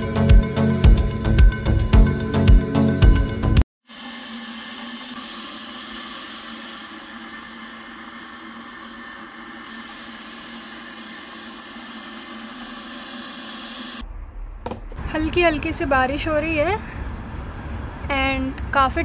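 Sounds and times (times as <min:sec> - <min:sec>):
electric kettle heating water: 0:03.9 - 0:14.0, 0:15.1 - 0:19.0.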